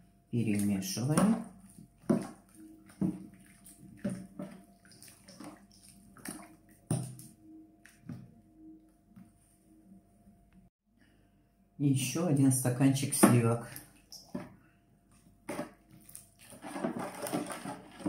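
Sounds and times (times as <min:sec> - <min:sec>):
spoon stirring liquid: 0:00.5 - 0:07.3.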